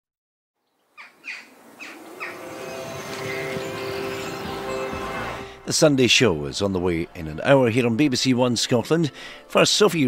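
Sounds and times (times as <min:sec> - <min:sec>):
bird chirps: 0:00.6 - 0:05.0.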